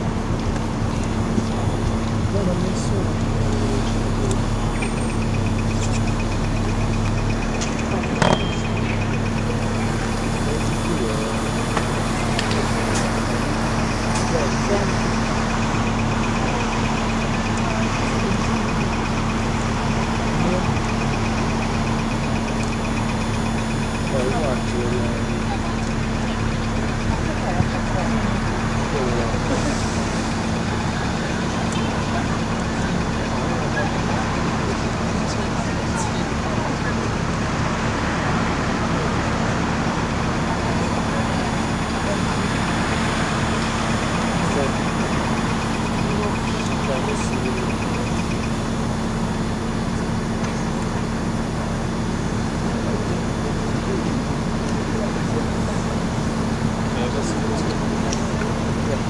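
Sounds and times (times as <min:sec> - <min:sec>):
bus engine humming: 0:00.0 - 0:59.0
city traffic noise: 0:00.0 - 0:59.0.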